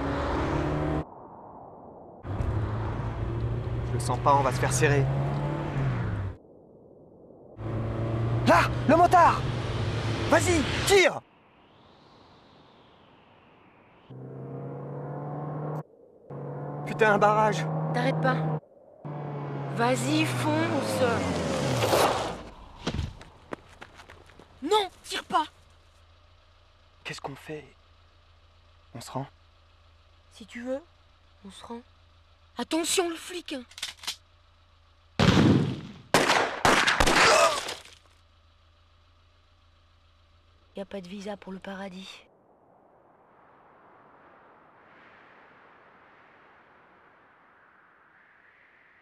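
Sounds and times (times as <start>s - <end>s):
car crash: 21.4s - 23.4s, 35.2s - 38.1s.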